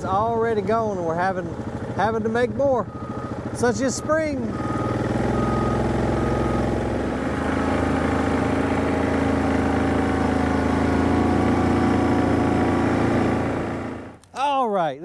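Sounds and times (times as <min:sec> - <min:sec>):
atv engine running: 0:00.0 - 0:14.2.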